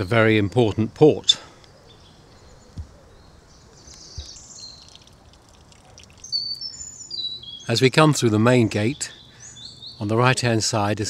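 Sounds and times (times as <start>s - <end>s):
faint outdoor background: 0.0s - 11.0s
small birds singing: 0.0s - 11.0s.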